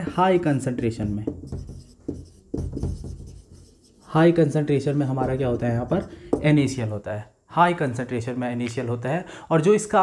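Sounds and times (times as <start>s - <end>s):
marker scraping on whiteboard: 0.9s - 6.5s.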